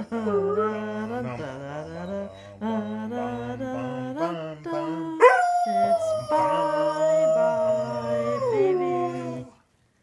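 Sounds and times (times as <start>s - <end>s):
dog howling: 4.8s - 9.6s.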